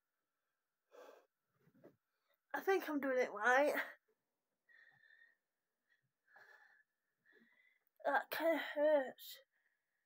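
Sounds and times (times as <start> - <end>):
woman breathing wheezily: 4.7 - 7.8.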